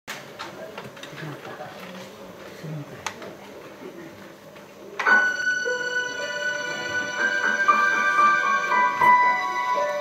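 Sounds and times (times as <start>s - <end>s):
quiet talking: 0.2s - 5.1s.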